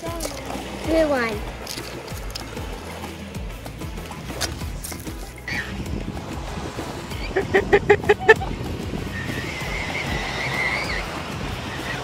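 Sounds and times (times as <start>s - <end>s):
surf and wind hiss: 5.5s - 12.0s.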